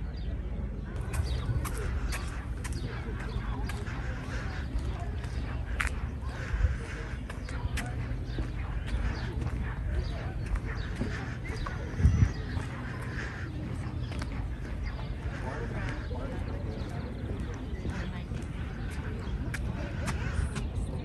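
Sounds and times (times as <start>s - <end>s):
steady low rumble: 0.0s - 21.0s
footsteps on wooden planks: 1.0s - 20.9s.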